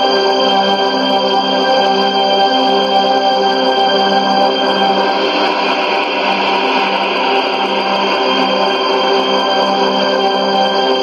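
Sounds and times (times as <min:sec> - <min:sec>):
music with long held notes: 0:00.0 - 0:11.0.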